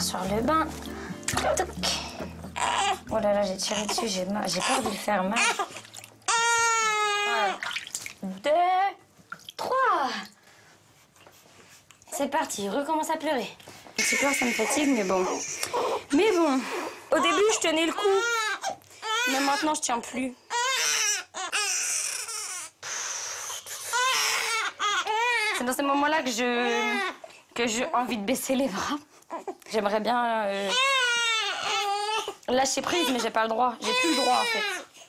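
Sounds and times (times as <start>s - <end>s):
baby crying: 1.8s - 7.7s, 14.0s - 16.4s, 17.1s - 19.8s, 20.5s - 27.2s, 30.6s - 34.9s.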